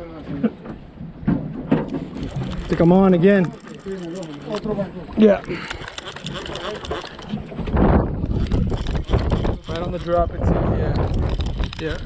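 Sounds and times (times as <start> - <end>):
wind rumbling on microphone: 1.0 - 12.0.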